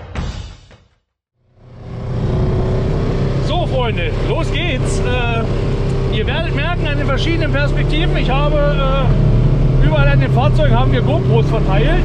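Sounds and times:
engine idling: 1.4 - 12.0
man talking: 3.4 - 9.2, 9.8 - 12.0.

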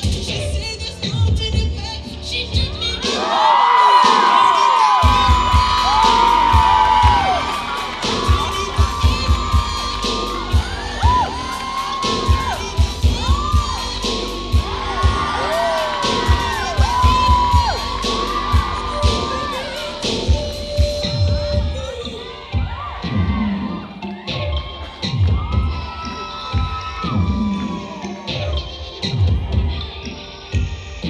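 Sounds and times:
audience whooping and cheering: 3.0 - 28.6
dance music with bass beat: 3.9 - 31.0.

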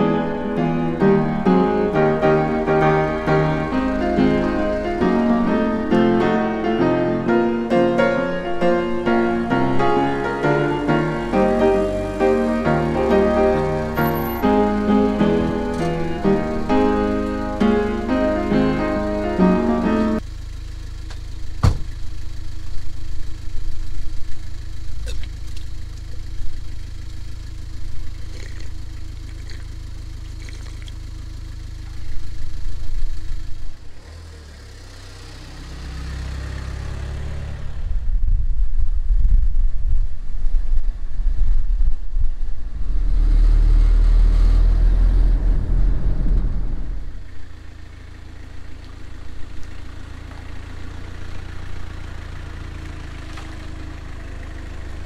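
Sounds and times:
van engine idling: 0.0 - 38.4, 40.7 - 55.0
engine and road noise rumble: 0.0 - 55.0.

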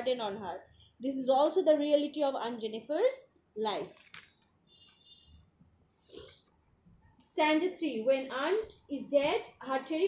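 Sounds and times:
soft intake of breath: 6.0 - 6.5.

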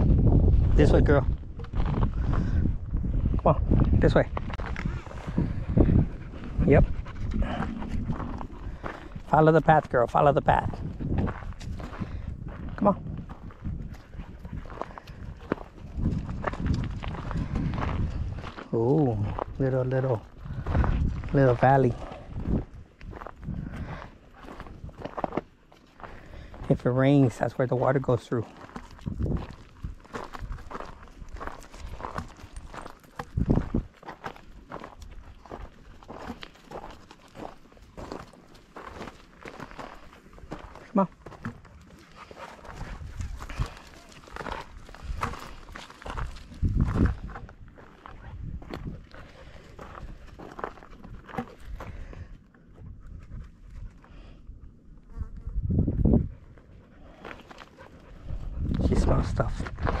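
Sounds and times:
footsteps on gravel: 0.2 - 52.3, 56.9 - 60.0
low thumps: 5.6 - 9.3.

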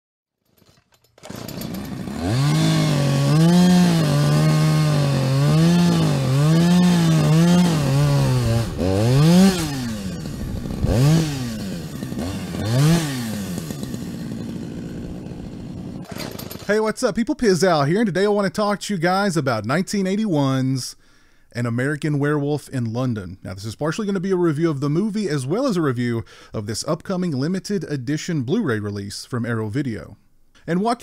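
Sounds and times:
chainsaw engine revving: 0.6 - 16.8.

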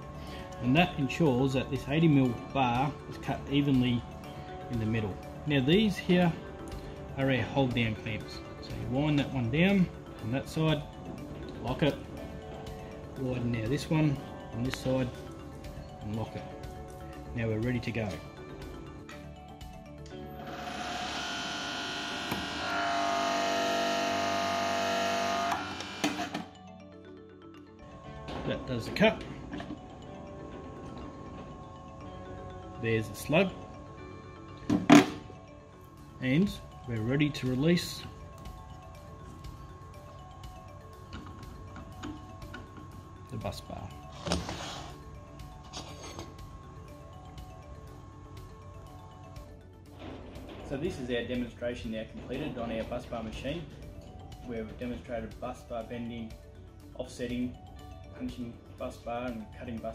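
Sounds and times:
background music: 0.0 - 59.9
hydraulic machine whine: 20.4 - 26.6.

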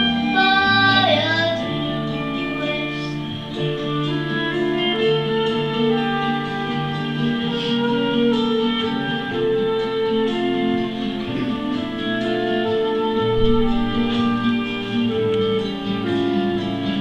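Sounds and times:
instrumental backing track: 0.0 - 17.0.

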